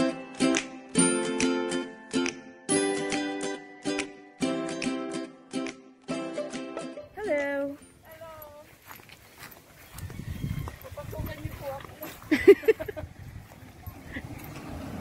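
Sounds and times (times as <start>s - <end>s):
drawn-out gliding calls: 9.3s - 15.0s.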